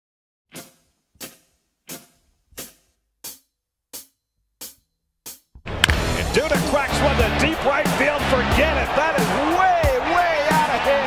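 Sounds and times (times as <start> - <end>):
crowd noise: 5.7 - 11.0.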